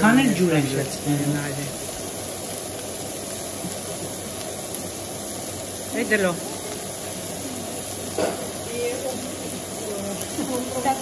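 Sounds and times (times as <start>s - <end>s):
vegetables hissing in a pan: 0.0s - 11.0s.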